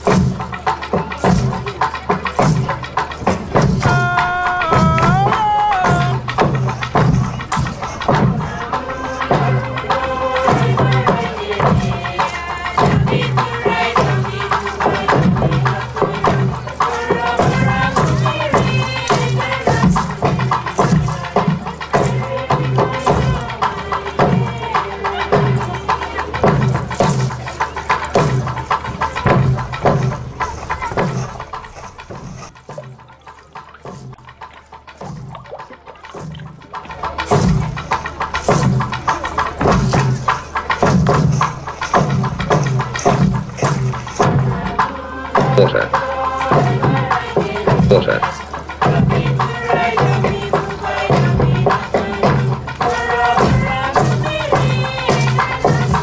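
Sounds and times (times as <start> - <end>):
men and women singing: 0.0 - 31.8, 39.6 - 56.0
steady drum beat: 0.0 - 56.0.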